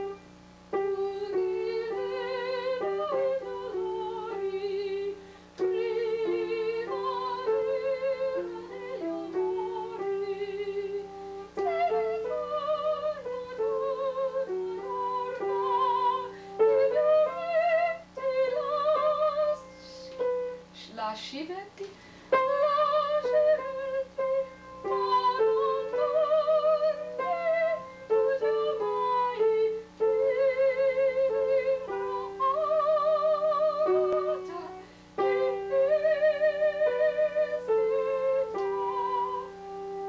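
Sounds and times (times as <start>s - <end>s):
piano accompaniment: 0.0s - 40.0s
woman singing with vibrato: 0.0s - 40.0s
faint breath sounds: 5.2s - 5.6s, 16.3s - 16.6s, 21.9s - 22.4s, 34.8s - 35.2s.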